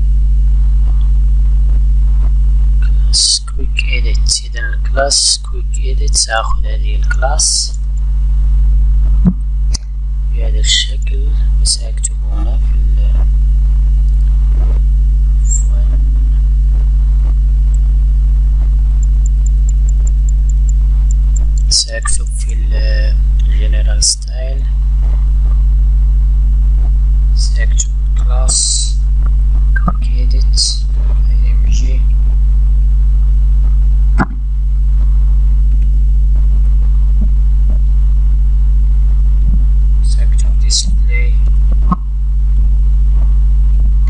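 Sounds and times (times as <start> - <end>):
low electrical mains hum: 0.0 - 44.0
faint keyboard typing: 19.0 - 21.7.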